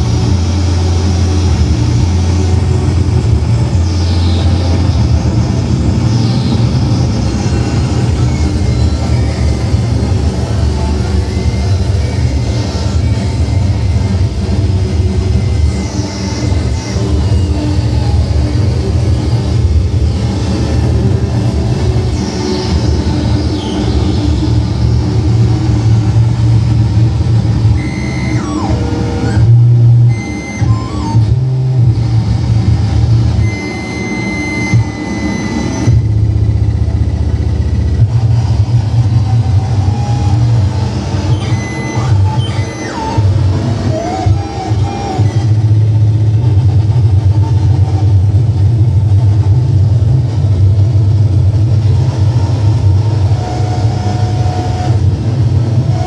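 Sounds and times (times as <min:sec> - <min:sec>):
short high electronic tones: 0:00.0 - 0:26.8, 0:27.5 - 0:46.5
harsh electronic noise rumble: 0:00.0 - 0:56.0.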